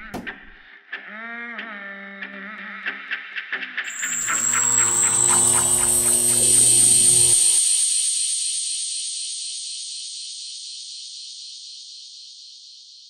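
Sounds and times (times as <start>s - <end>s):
tones sliding down: 3.9s - 9.2s
rising high whine: 3.9s - 10.6s
high hiss: 3.9s - 12.0s.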